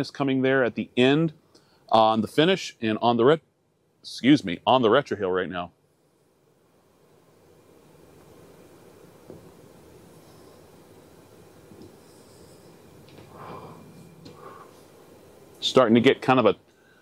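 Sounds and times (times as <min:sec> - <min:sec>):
man exhaling smoke through nose: 0:09.9 - 0:15.2
short cigar puffs: 0:11.6 - 0:15.6.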